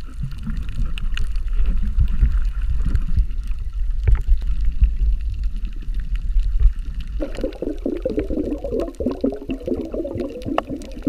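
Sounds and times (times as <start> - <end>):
clicks and crackles: 0.0 - 11.0
underwater rumble of moving water: 0.0 - 11.0.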